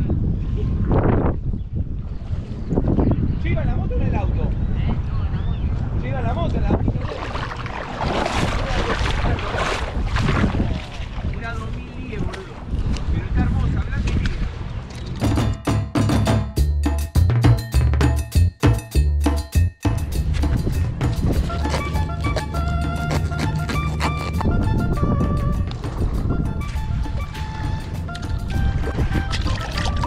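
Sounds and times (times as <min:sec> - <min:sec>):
wind rumbling on microphone: 0:00.0 - 0:15.6, 0:20.1 - 0:30.0
music with percussive beat: 0:15.2 - 0:30.0.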